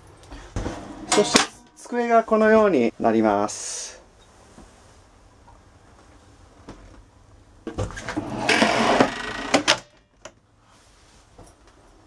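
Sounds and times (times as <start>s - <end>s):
table top scraping and rattling: 7.9s - 9.8s.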